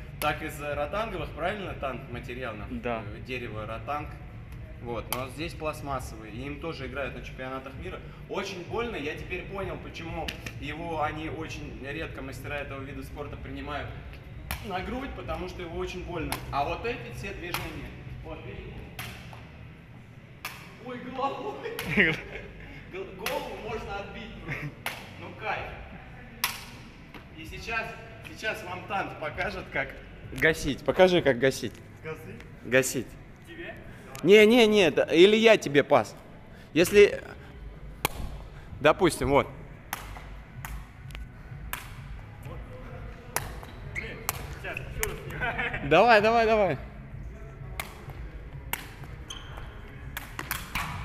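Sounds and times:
ball smack echoing in hall: 10.2s - 10.6s, 14.4s - 15.0s, 16.2s - 16.6s, 17.4s - 18.0s, 18.8s - 19.6s, 20.3s - 20.8s, 23.2s - 23.7s, 24.8s - 25.2s, 26.3s - 27.4s, 37.9s - 38.6s, 39.8s - 45.4s, 47.7s - 51.0s
ball kicked with sharp taps: 38.0s - 38.5s.

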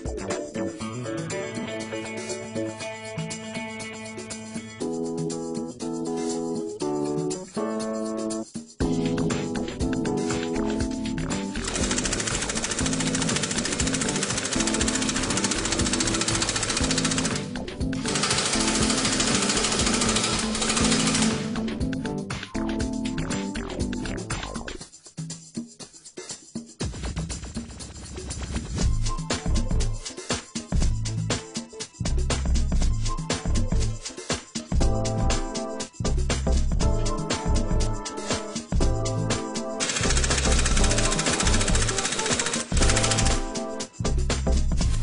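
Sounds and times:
background music: 0.0s - 45.0s
impact wrench hammering rattle: 11.6s - 21.6s, 39.8s - 43.6s.

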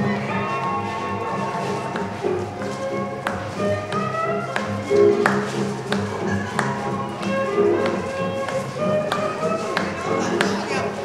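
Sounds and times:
dance music from jukebox: 0.0s - 11.0s.

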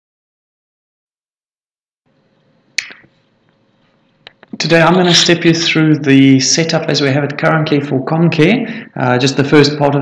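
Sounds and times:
faint microphone hiss: 2.1s - 10.0s
sharp click: 2.8s - 3.6s.

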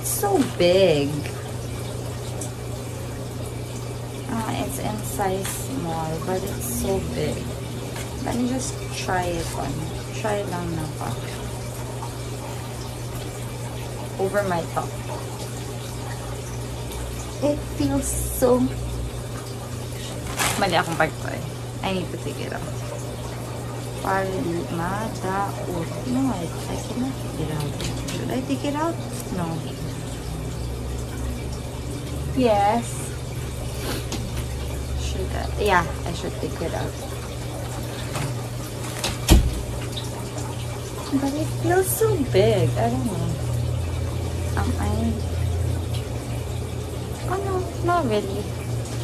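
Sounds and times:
low hum: 0.0s - 49.0s.

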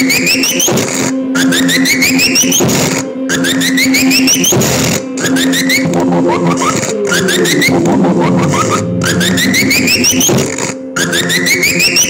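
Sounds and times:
low synthesizer drone: 5.0s - 12.0s
rising synthesizer chirps: 5.5s - 12.0s
short noisy swell: 7.6s - 10.9s.

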